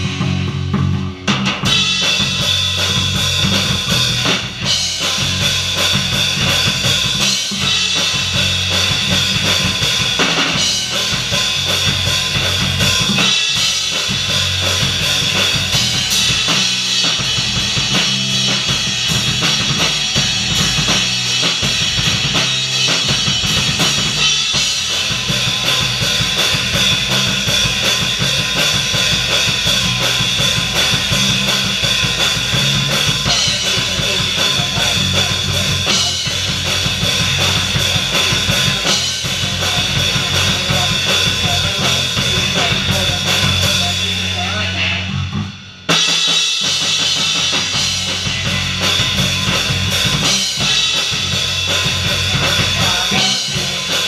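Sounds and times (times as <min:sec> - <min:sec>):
drum kit kick and snare: 0:00.0 - 0:44.4, 0:45.8 - 0:54.0
electric bass guitar: 0:00.0 - 0:54.0
electric guitar: 0:00.0 - 0:54.0.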